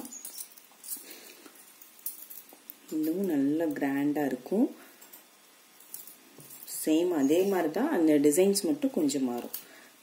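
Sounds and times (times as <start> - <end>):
necklaces clinking: 0.0 - 3.4, 5.0 - 7.3.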